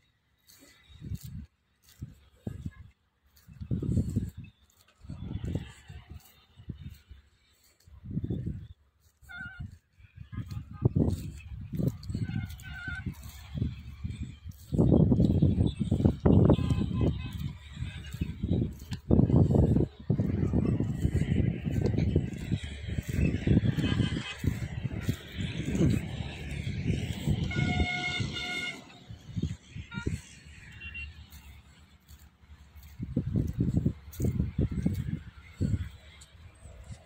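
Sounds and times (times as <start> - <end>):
low rumbling noise: 13.4 - 30.7
distant horn tooting: 15.4 - 21.3, 21.9 - 32.0.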